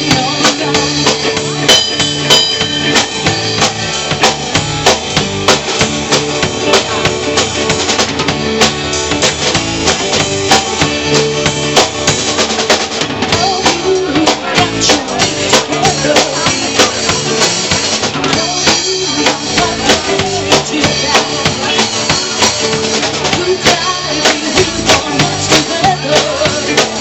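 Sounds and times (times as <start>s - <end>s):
bass drum and snare hits: 0.0s - 27.0s
electric guitars: 0.0s - 27.0s
rock band playing: 0.0s - 27.0s.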